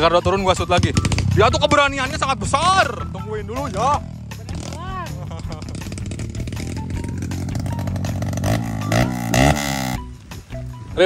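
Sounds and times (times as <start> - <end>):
dirt bike engine revving: 0.2 - 10.1.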